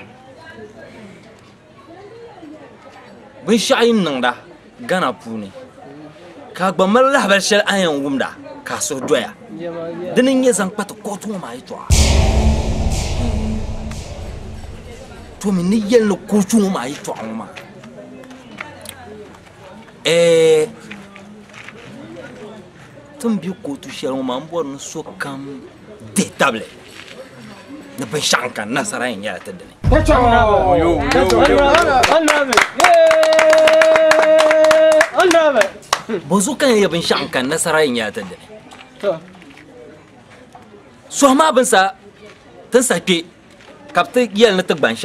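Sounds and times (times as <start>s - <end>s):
deep booming hit with crash: 11.9s - 16.5s, 29.8s - 32.1s.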